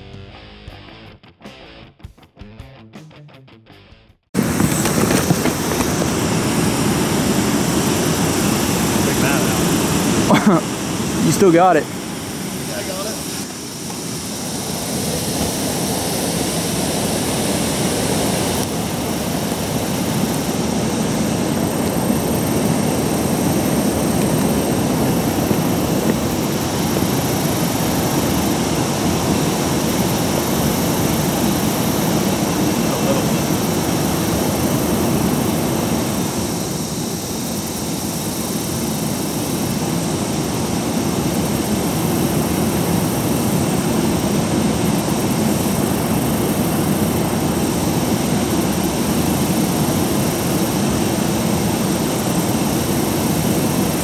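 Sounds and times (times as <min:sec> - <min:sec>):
roar of rushing water: 0:04.4 - 0:54.0.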